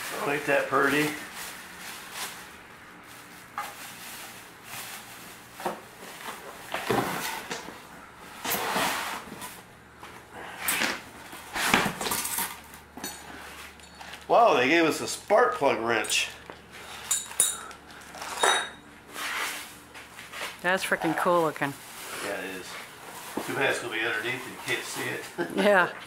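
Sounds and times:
plastic wrapping crinkling: 0.0 - 5.6.

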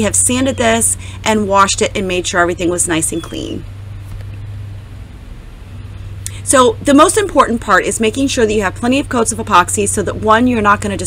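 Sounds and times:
narration voice: 0.0 - 3.6, 6.3 - 11.0
low electrical hum: 0.0 - 11.0.

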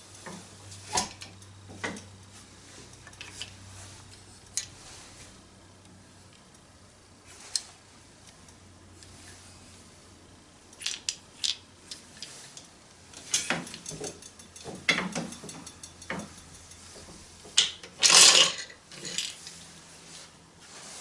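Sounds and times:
wooden handloom clacking: 13.2 - 19.4.

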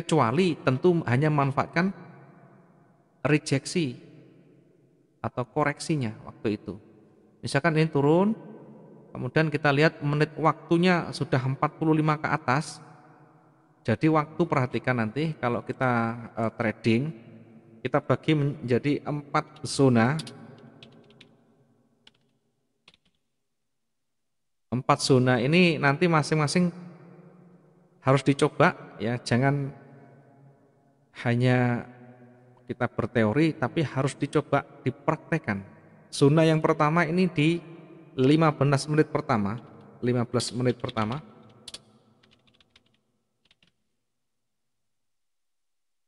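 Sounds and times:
computer keyboard keystrokes: 19.6 - 21.3, 22.1 - 22.3, 22.9 - 23.2, 40.8 - 43.8.

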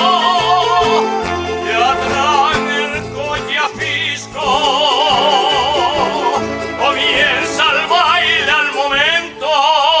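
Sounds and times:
accordion: 0.0 - 10.0
folk ensemble of guitars and lutes: 0.0 - 10.0
person singing with wide vibrato: 0.0 - 10.0
violin: 0.0 - 10.0.

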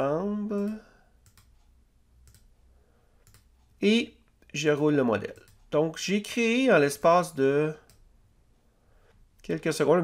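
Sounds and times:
man speaking: 0.0 - 1.0, 3.8 - 7.9, 9.4 - 10.0
computer mouse clicks: 0.6 - 2.5, 3.2 - 4.5, 5.2 - 5.7.

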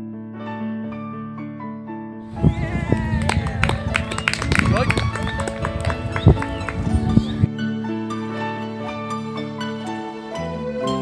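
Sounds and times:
background music of held notes: 0.1 - 11.0.

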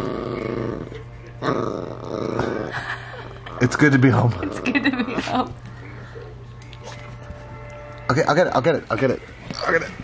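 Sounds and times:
small dog growling: 0.0 - 5.3.

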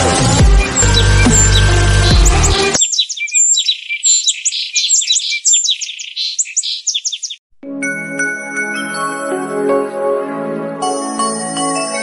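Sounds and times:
deep booming music with rumble: 0.0 - 2.8
small birds chirping: 0.4 - 7.4.

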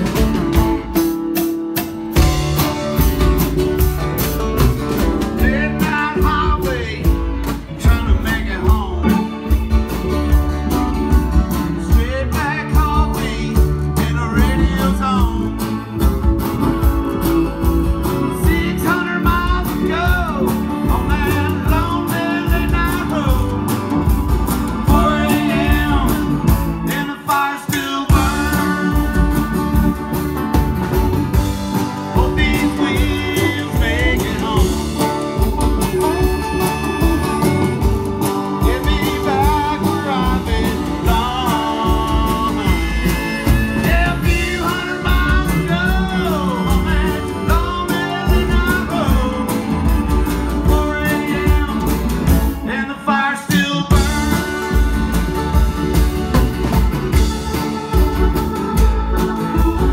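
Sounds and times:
drums with steady beat: 0.0 - 59.9
electric guitar: 0.0 - 59.9
keyboards: 0.0 - 59.9
man singing: 5.0 - 10.3, 11.2 - 16.1, 17.9 - 30.4, 31.7 - 55.6.

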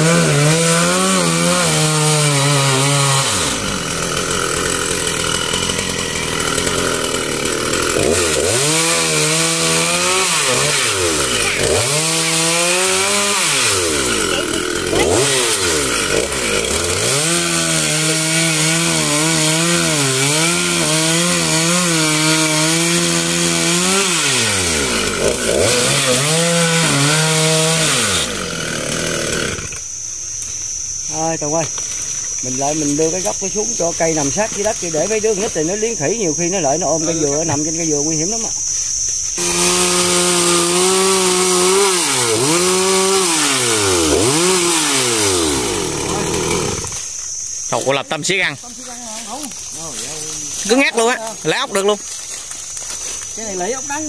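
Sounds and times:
chainsaw cutting wood: 0.0 - 54.0
high insect buzz: 0.0 - 54.0.

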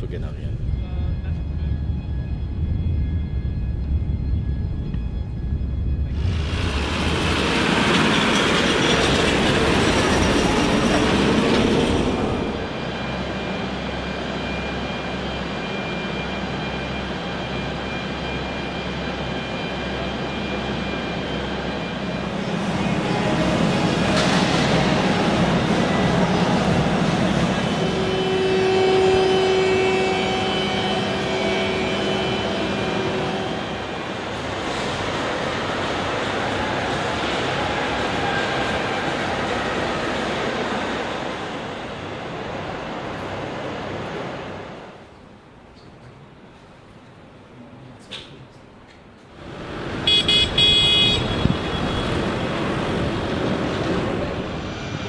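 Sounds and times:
jet engine noise: 0.0 - 45.7, 49.3 - 55.0.

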